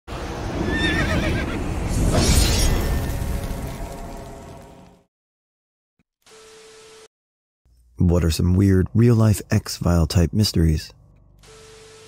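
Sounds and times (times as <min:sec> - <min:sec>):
horse neighing: 0:00.6 - 0:01.6.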